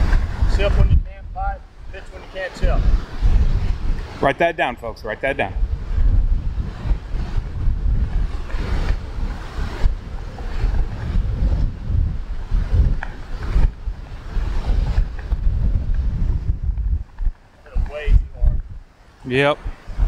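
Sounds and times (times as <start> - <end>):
strong wind buffeting microphone: 0.0 - 20.0.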